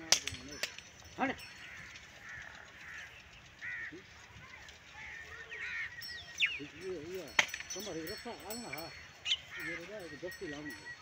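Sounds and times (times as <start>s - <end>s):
bird calling: 0.0s - 11.0s.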